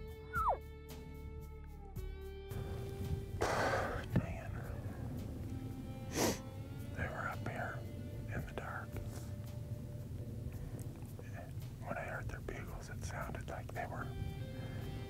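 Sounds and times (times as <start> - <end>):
background music: 0.0 - 15.0
sharp breath or sniff: 3.4 - 4.1, 6.1 - 6.5
man whispering: 3.6 - 4.8, 6.9 - 9.4, 11.1 - 14.2.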